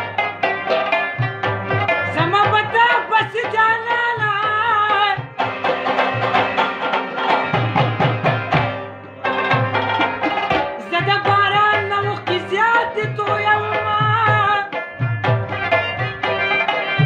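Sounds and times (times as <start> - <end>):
hand drum strokes: 0.0 - 17.0
quick instrumental notes: 0.0 - 17.0.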